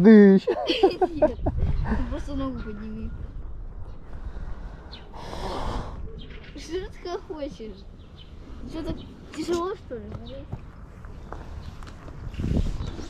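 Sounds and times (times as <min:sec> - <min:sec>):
breathy hiss: 0:04.4 - 0:06.0.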